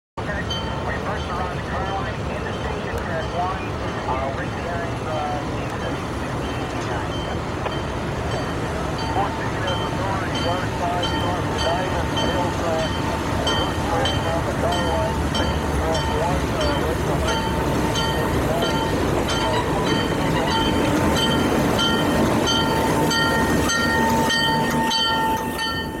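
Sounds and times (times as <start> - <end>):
diesel locomotive engine rumble: 0.2 - 26.0
locomotive bell ringing: 0.2 - 26.0.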